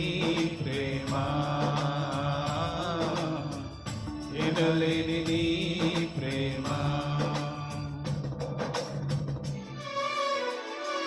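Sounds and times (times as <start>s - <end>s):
men singing worship song: 0.0s - 8.4s
instrumental backing: 0.0s - 11.0s.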